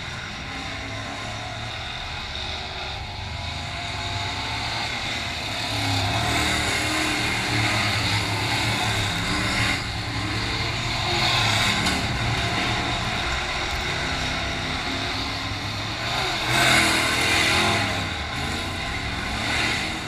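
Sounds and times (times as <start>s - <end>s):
race car engines at speed: 0.0s - 20.0s.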